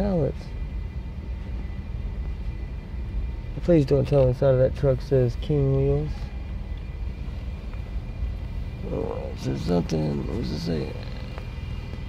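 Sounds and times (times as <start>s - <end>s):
car interior low rumble: 0.0s - 12.0s.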